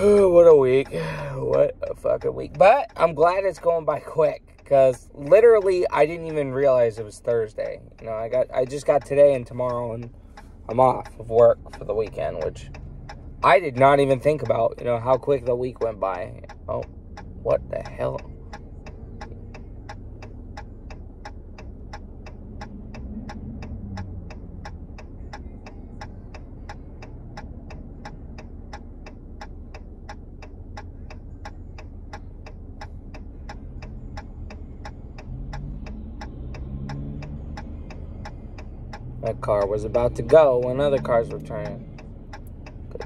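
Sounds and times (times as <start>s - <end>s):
car turn signal clicking: 0.0s - 43.0s
low car cabin hum: 0.0s - 43.0s.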